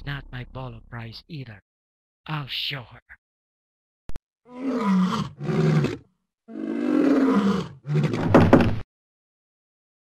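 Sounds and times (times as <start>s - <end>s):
deep growling monster roars: 4.5s - 8.2s.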